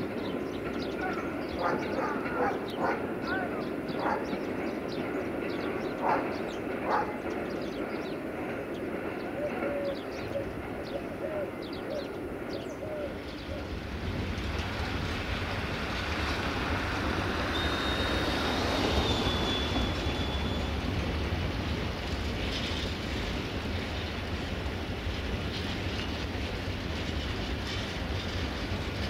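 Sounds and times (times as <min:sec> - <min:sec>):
train engine and rail rumble: 0:00.0 - 0:29.0.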